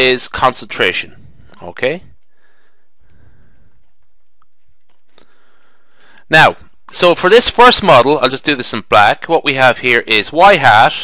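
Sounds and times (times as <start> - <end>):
faint breath: 1.1 - 4.1, 5.1 - 6.3.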